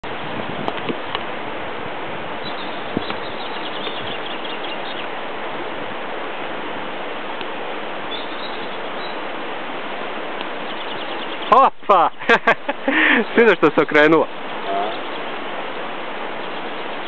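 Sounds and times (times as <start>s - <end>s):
birds chirping: 2.3s - 5.8s, 7.9s - 17.0s.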